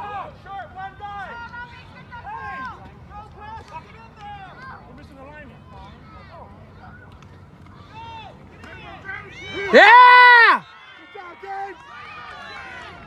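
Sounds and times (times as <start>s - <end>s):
spectators shouting and cheering: 7.7s - 13.0s.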